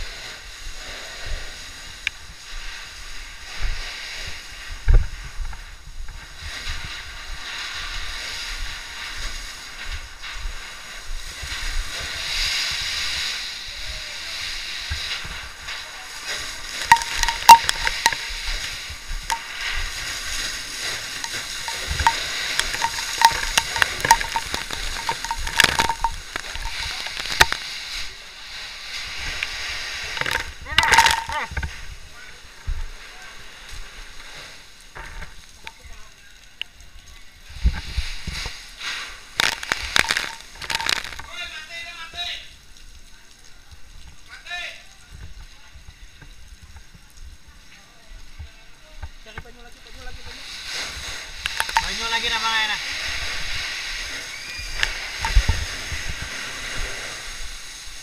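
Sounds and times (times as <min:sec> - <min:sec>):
fire hose water spraying: 0:00.0 - 0:58.0.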